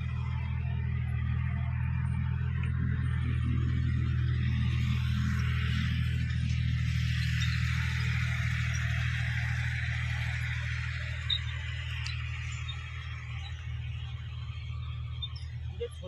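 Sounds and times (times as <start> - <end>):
tractor diesel engine droning: 0.0 - 16.0.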